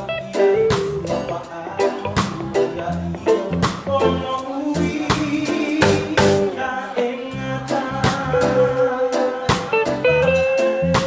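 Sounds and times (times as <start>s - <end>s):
electric guitar: 0.0s - 11.0s
keyboards: 0.0s - 11.0s
drum and cymbal hits: 5.0s - 6.6s.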